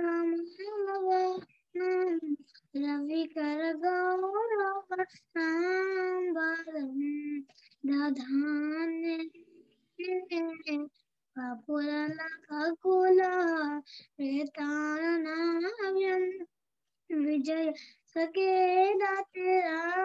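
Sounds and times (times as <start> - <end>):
child singing chant: 0.0 - 9.4, 10.0 - 16.5, 17.1 - 20.0.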